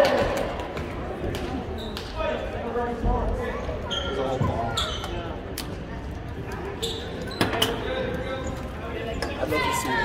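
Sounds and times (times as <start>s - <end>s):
spectators talking: 0.0s - 10.0s.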